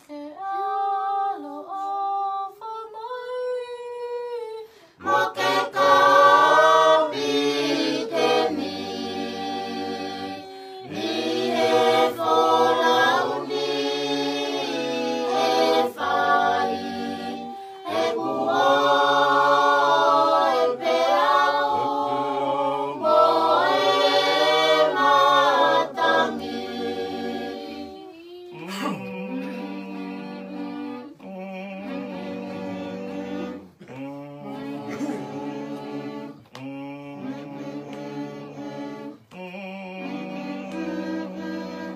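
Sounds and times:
group singing a hymn in harmony: 0.0s - 3.3s, 4.8s - 41.9s
solo voice singing: 27.9s - 30.0s.

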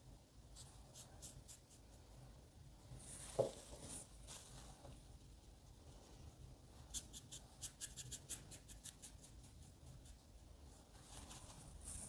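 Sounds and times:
brush swishing on paper: 2.9s - 12.0s.

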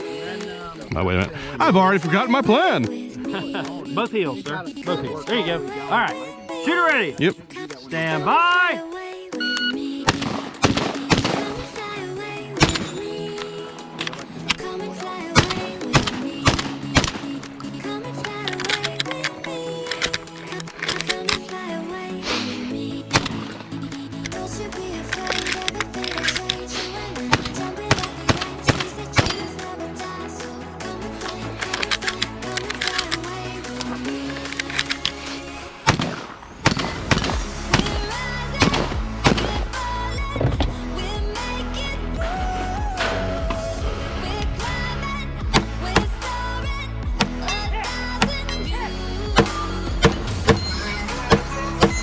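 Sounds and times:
shotgun shots: 10.0s - 11.8s, 12.6s - 13.4s, 15.3s - 17.6s, 23.1s - 23.7s, 27.2s - 29.6s, 35.8s - 39.8s.

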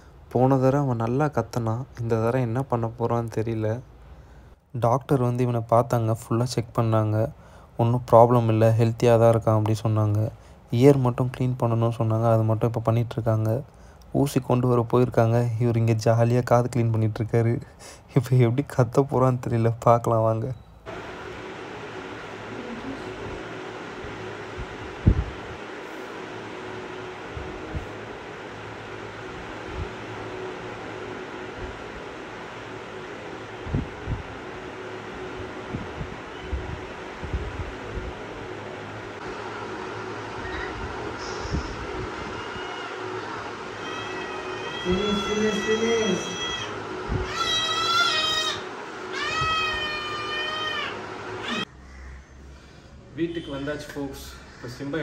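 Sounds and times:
kitten meowing: 43.8s - 48.6s.

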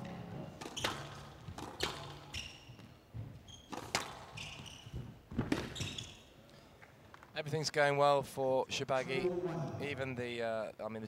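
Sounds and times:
squash ball struck by rackets: 0.6s - 2.3s, 3.7s - 4.3s
court shoes squeaking: 0.6s - 7.1s.

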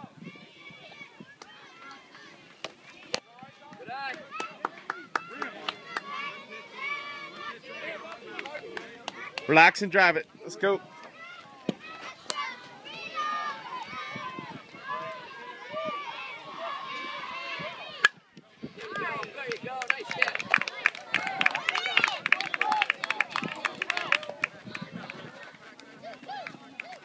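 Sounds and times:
spectators talking: 0.0s - 27.0s
crowd cheering and shouting: 3.1s - 27.0s.

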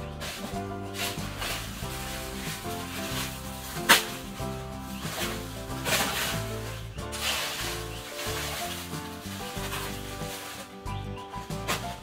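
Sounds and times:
background music with held notes: 0.0s - 12.0s
dry leaves rustling and scraping: 0.0s - 12.0s.

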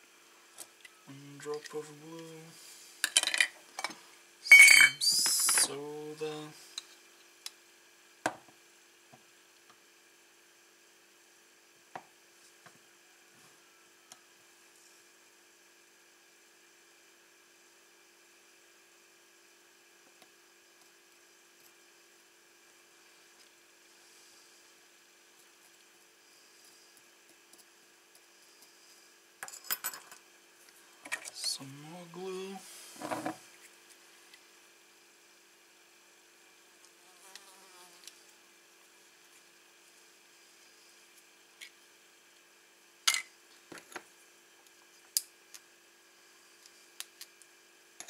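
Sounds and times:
faint electrical hum: 0.0s - 48.0s.

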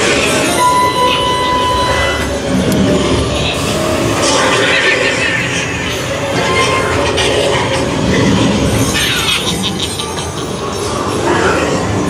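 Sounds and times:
rumbling and rattling noise: 0.0s - 12.0s.

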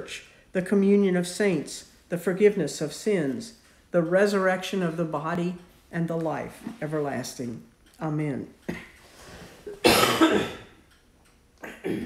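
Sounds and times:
woman coughing: 9.7s - 10.8s, 11.6s - 12.0s.

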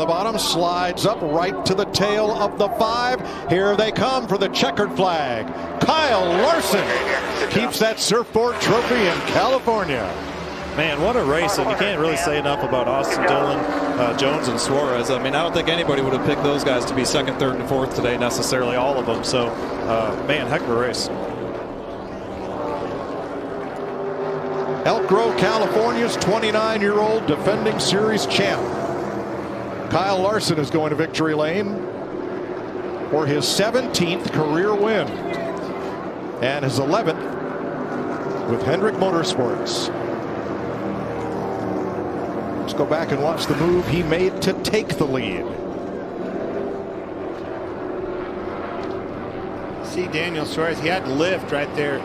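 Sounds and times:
race car engines droning: 0.0s - 52.0s.

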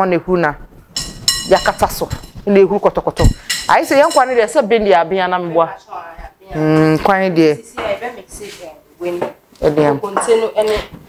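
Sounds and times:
mixing bowl clinking against dishes: 1.0s - 2.4s, 3.2s - 4.6s.

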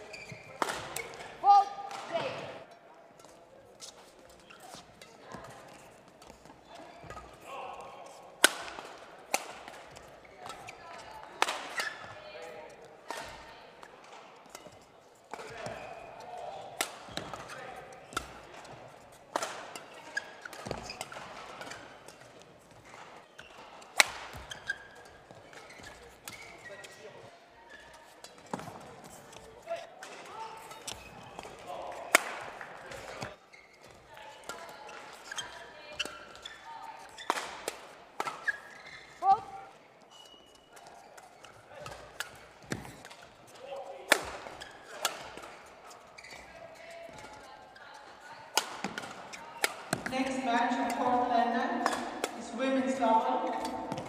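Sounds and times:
shoe squeaks on court floor: 0.0s - 1.3s, 3.2s - 7.4s, 11.7s - 12.2s, 17.0s - 18.4s, 19.7s - 27.1s, 27.7s - 29.5s, 30.6s - 31.5s, 32.9s - 34.1s, 34.8s - 37.5s, 38.2s - 43.3s, 44.4s - 45.0s, 45.9s - 46.6s, 51.8s - 52.4s
racket hitting shuttlecock: 0.2s - 2.6s, 8.4s - 12.2s, 13.0s - 26.7s, 27.8s - 39.7s, 40.5s - 46.5s, 48.4s - 54.0s.

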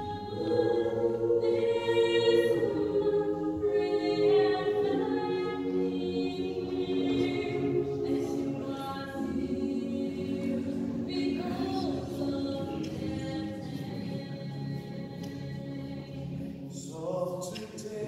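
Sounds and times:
mixed choir singing a cappella: 0.0s - 18.0s.

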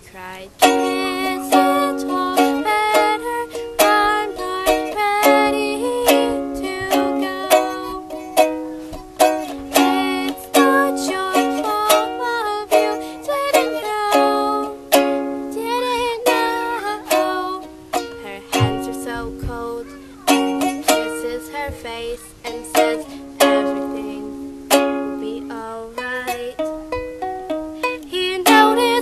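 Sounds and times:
woman singing: 0.0s - 27.1s, 27.8s - 29.0s
ukulele strumming: 0.0s - 29.0s.

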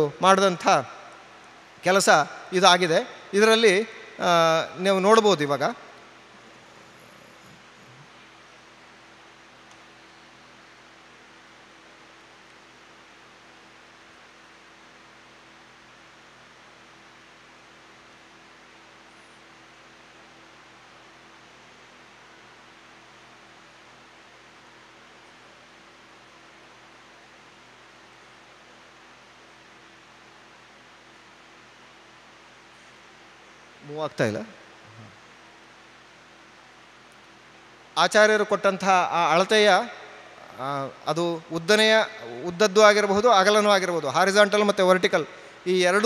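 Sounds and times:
faint low hum: 0.0s - 46.0s
microphone hiss: 0.0s - 46.0s.

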